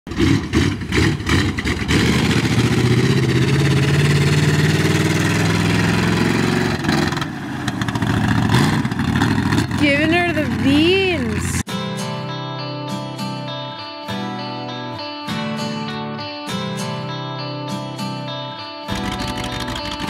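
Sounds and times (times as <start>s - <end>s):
truck engine pulling under load: 0.1s - 11.6s, 18.9s - 20.0s
truck engine revving: 0.1s - 11.6s, 18.9s - 20.0s.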